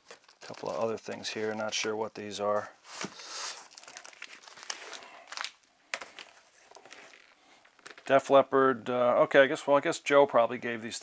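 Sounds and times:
cardboard sleeves rustling: 0.0s - 8.1s.

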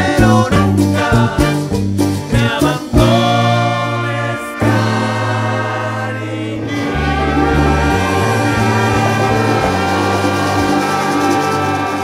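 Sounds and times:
group singing: 0.0s - 1.7s, 2.3s - 12.0s
maracas: 0.0s - 4.8s, 6.6s - 12.0s
congas: 0.0s - 12.0s
latin dance band playing: 0.0s - 12.0s
trumpets: 0.5s - 1.8s, 3.4s - 12.0s.

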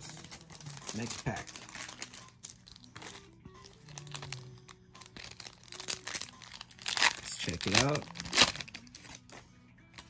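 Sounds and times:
foil pack crinkling: 0.0s - 9.4s.

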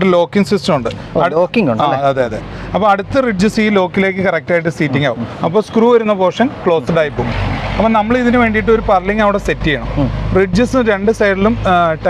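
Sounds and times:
men talking: 0.0s - 12.0s
low steady rumble: 0.6s - 12.0s.

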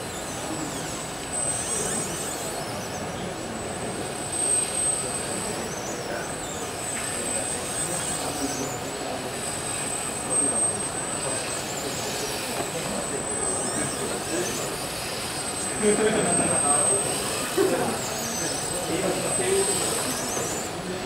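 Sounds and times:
high-pitched motor whine: 0.0s - 21.0s
indistinct voices: 0.0s - 21.0s.

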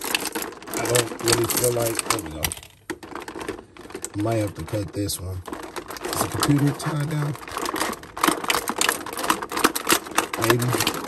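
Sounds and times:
plastic packaging crackling: 0.0s - 11.0s.

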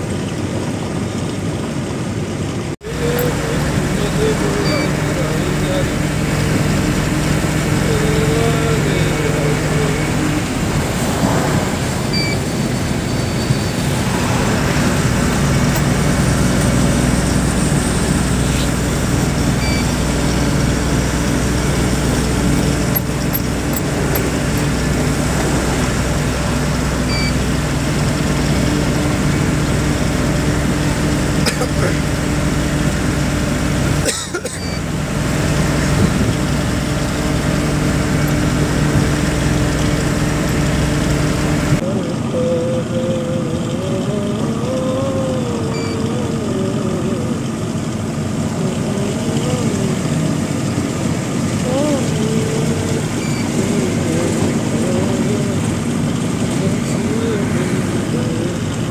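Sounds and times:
tyre and road noise: 0.0s - 41.8s
truck engine running: 0.0s - 58.9s.

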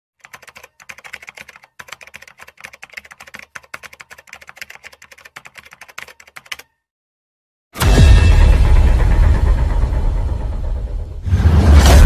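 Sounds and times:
keyboard typing clicks: 0.2s - 6.8s.

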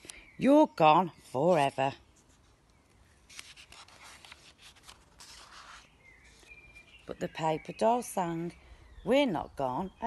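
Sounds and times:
book pages rustling: 1.2s - 7.2s.

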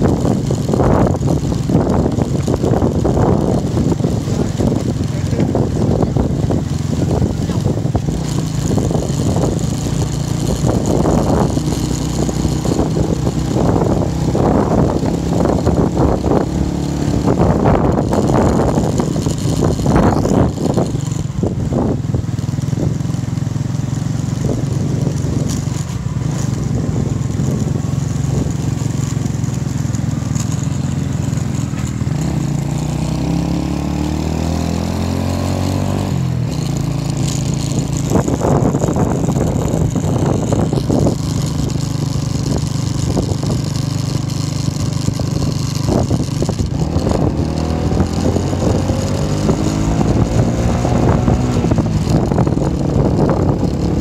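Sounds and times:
motorbike engine revving: 0.0s - 54.0s
steady rush of noise: 25.9s - 54.0s.

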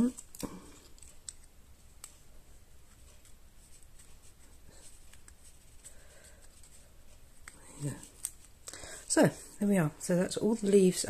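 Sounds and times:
cardstock rustling and ticking: 0.0s - 9.3s.

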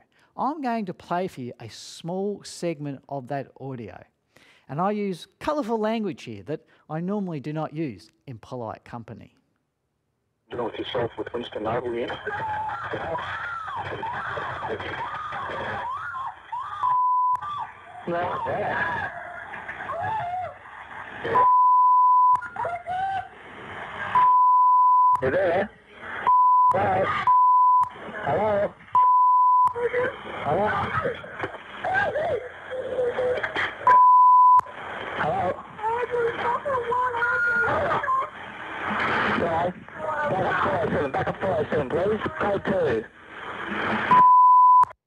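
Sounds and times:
loud censor bleep: 44.1s - 45.0s.

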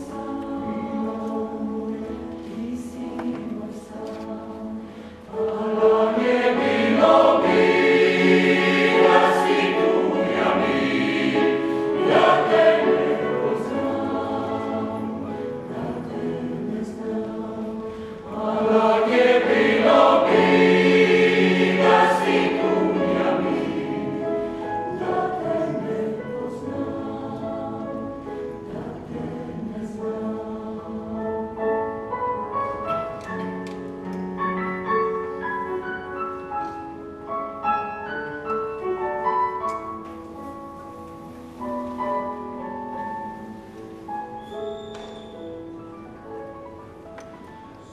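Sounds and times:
mixed choir singing in harmony: 0.0s - 33.2s.

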